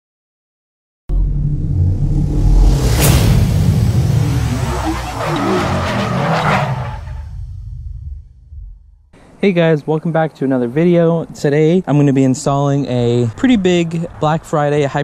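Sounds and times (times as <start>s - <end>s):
swirling sweeping tones: 1.1s - 8.7s
sharp whoosh: 1.1s - 9.0s
deep rumble: 1.1s - 9.2s.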